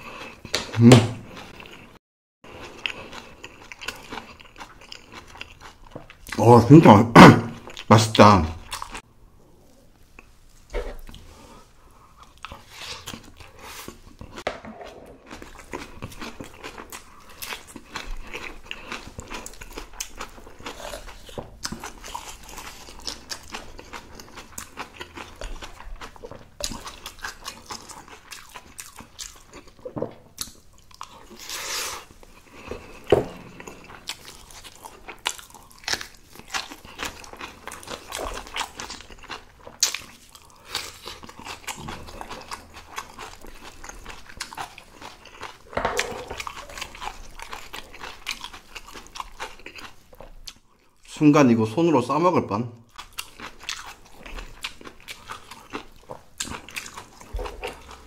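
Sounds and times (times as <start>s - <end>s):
chewing and crunching food: 0.0s - 6.9s, 7.5s - 51.2s, 52.8s - 58.0s
wooden spoon scraping a bowl: 13.6s - 15.4s, 45.7s - 46.4s.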